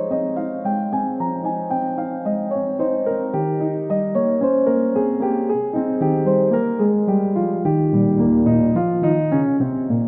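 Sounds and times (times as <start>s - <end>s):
piano music: 0.0s - 10.0s.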